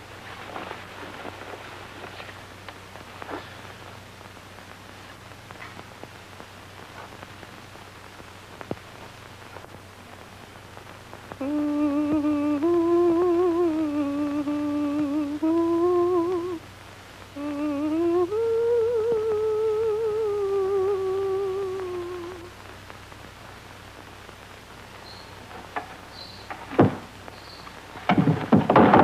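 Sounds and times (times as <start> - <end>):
faint hiss and crackle: 0.0 - 29.0
woman humming a lullaby: 11.4 - 16.7, 17.3 - 22.6.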